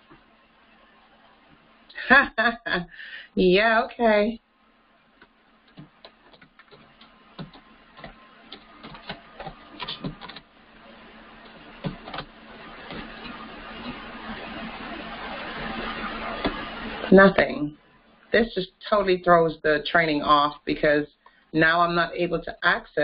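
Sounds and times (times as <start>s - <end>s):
keyboard keys clicking: 5.7s - 10.4s, 11.4s - 12.3s.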